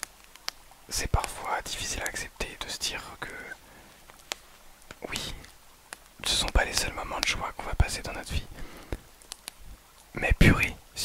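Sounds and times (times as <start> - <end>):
man whispering: 0.9 - 3.8, 5.0 - 5.5, 6.2 - 8.8, 10.1 - 11.0
breath: 3.6 - 4.5, 8.5 - 9.1
mouth clicks: 4.2 - 9.6.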